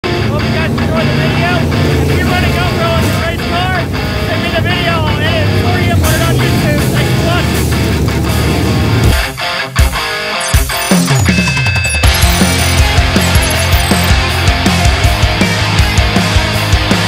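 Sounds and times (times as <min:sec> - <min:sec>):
race car engines droning: 0:00.0 - 0:09.2
man talking: 0:00.2 - 0:08.2.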